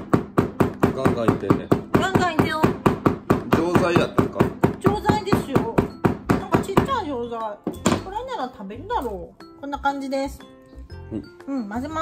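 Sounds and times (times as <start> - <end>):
hammer knock on wooden board: 0.0 - 7.0.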